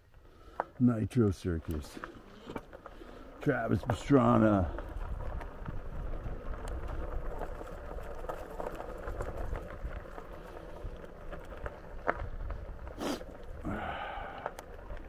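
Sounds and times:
tyres rumbling on dirt: 0:00.4 - 0:15.0
wind buffeting microphone: 0:03.8 - 0:14.0.

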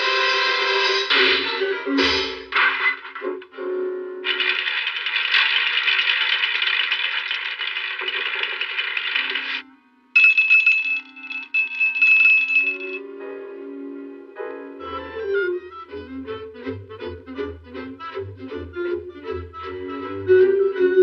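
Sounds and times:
orchestral cartoon music: 0:00.0 - 0:04.3, 0:13.0 - 0:21.0
gumballs rattling out of a chute: 0:04.3 - 0:09.6.

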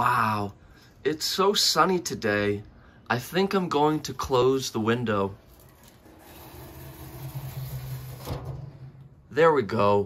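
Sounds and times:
roller shutter rolling rumble: 0:05.3 - 0:09.3.

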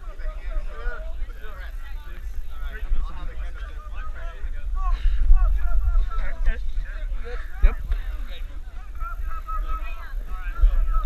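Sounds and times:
people shouting and calling: 0:00.0 - 0:11.0
wind rumble on microphone: 0:00.0 - 0:11.0.

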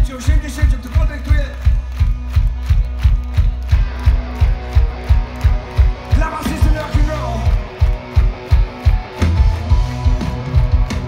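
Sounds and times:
electric guitar: 0:01.6 - 0:11.0.

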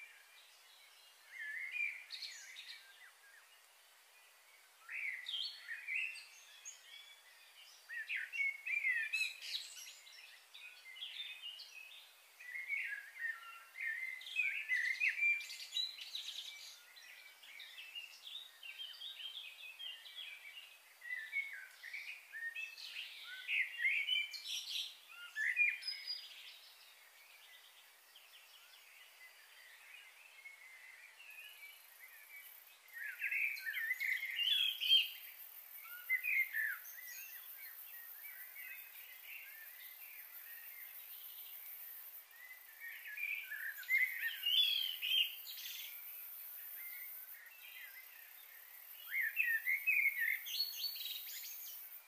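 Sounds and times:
faint outdoor hiss: 0:00.0 - 0:52.0
small birds chirping: 0:00.0 - 0:52.0.

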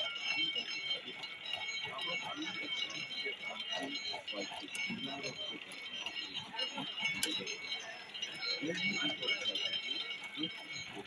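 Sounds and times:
crowd voices and chatter: 0:00.0 - 0:11.0.

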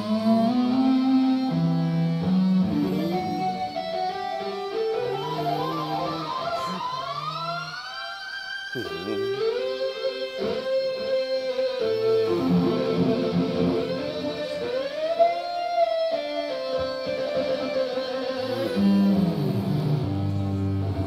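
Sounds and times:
distorted electric guitar lead: 0:00.0 - 0:21.0.

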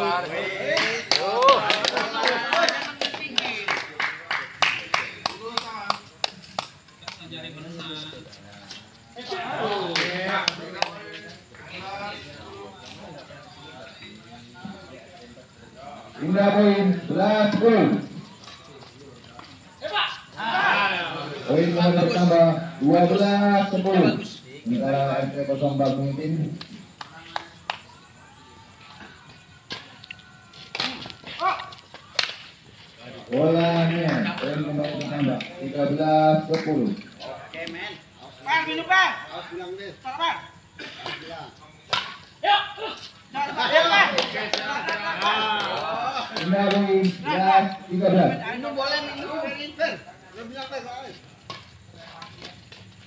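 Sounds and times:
rackets striking shuttlecock: 0:41.9 - 0:42.3.

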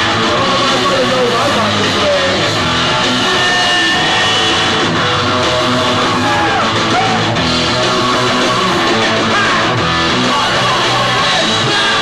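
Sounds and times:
distorted electric guitar: 0:00.0 - 0:12.0
punk band playing live: 0:00.0 - 0:12.0.

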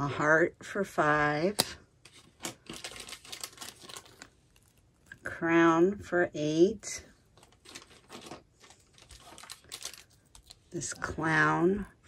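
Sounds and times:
plastic bags rustling and crinkling: 0:02.1 - 0:05.1, 0:07.2 - 0:11.0.

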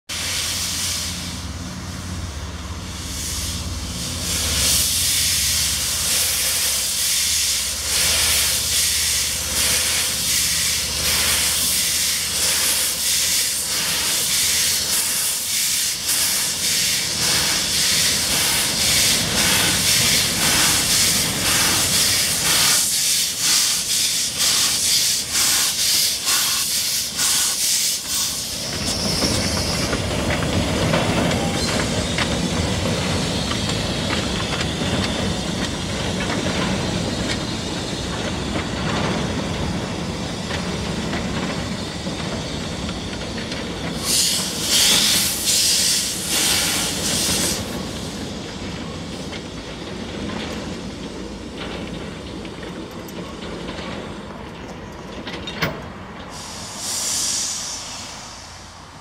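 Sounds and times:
steam hiss: 0:00.1 - 0:52.3, 0:56.2 - 0:59.0
steam locomotive exhaust chuffs: 0:00.1 - 0:59.0
wagons rolling on rails: 0:02.9 - 0:56.6.

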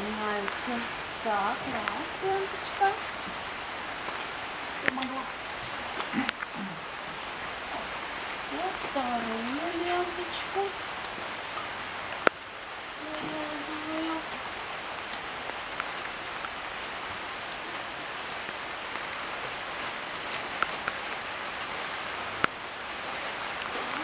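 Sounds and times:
light rain patter: 0:00.0 - 0:24.0.

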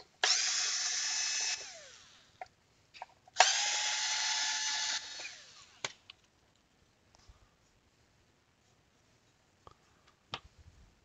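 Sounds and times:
power screwdriver whine: 0:00.2 - 0:02.2, 0:03.4 - 0:05.8.

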